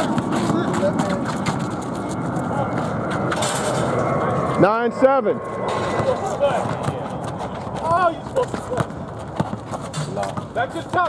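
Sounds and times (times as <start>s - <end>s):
basketball bouncing on asphalt: 0.0s - 2.9s, 5.7s - 11.0s.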